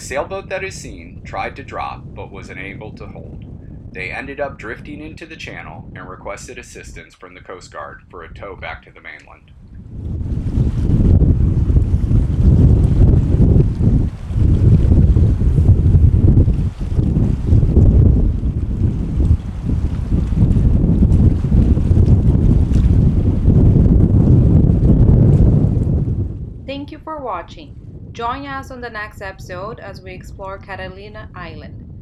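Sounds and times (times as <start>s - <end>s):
choppy water: 0.0s - 32.0s
wind buffeting microphone: 0.0s - 32.0s.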